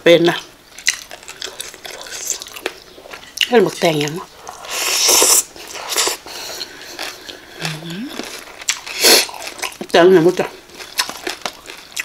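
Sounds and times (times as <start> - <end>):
quiet chewing: 0.8 - 12.0
loud slurp and bite: 4.6 - 6.2.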